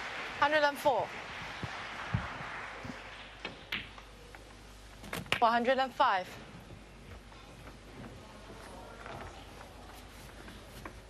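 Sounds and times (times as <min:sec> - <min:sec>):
audience applause: 0:00.0 - 0:03.5.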